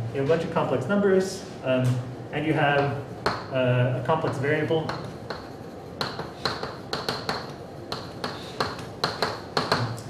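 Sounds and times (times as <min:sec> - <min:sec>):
chalk tapping on blackboard: 0:02.7 - 0:10.0.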